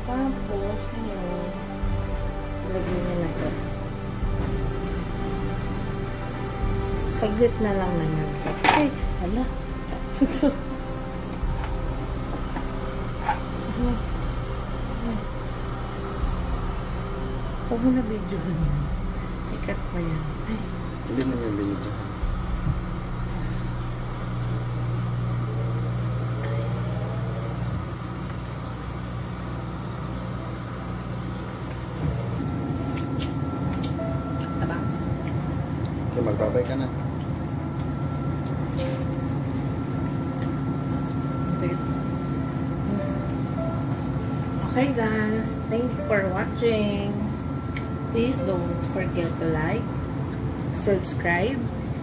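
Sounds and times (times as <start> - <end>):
water boiling in steamer: 0.0 - 32.8
thin high whine: 0.0 - 35.0
low mechanical hum: 0.0 - 52.0.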